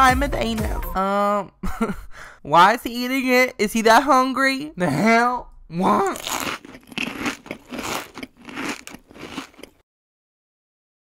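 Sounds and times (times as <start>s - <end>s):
crunching and chewing candy: 5.9s - 9.8s.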